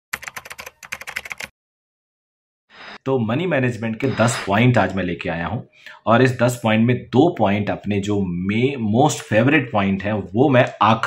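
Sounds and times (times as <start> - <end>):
rapid keyboard key clicks: 0.2 - 1.5.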